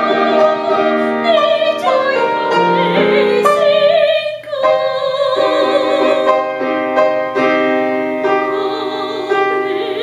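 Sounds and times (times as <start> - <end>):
piano chords: 0.0 - 10.0.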